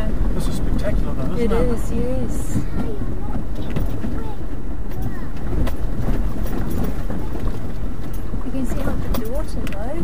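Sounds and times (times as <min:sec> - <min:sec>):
vehicle engine and tyres rumbling: 0:00.0 - 0:10.0
stones clicking under wheels: 0:04.9 - 0:10.0.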